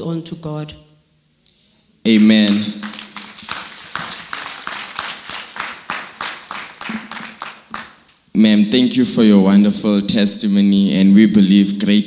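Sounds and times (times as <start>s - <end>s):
congregation clapping: 2.1s - 8.2s.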